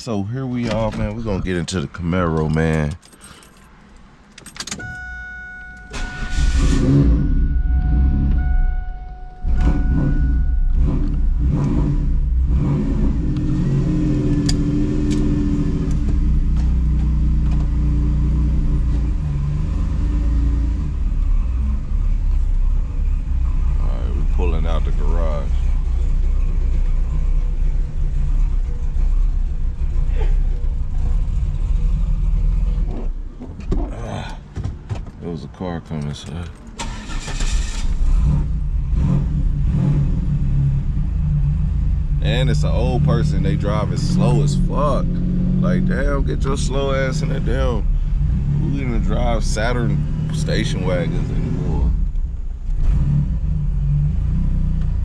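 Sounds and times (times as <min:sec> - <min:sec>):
car engine starting: 0:00.0 - 0:55.0
deep engine rumble: 0:00.0 - 0:55.0
car warning chime: 0:04.7 - 0:11.7.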